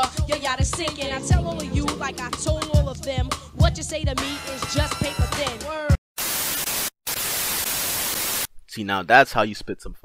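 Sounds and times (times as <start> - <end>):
television static hiss: 6.2 - 8.5.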